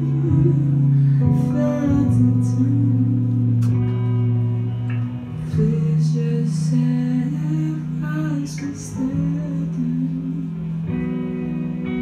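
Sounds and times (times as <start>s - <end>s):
man singing: 0.0s - 3.7s, 5.4s - 10.8s
live band playing slow song: 0.0s - 12.0s.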